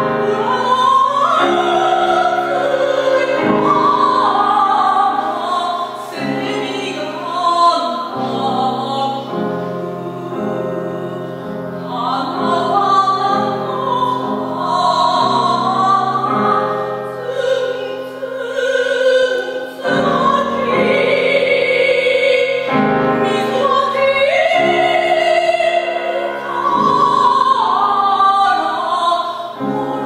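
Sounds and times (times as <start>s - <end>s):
female opera singer: 0.0s - 30.0s
grand piano chords: 0.0s - 30.0s.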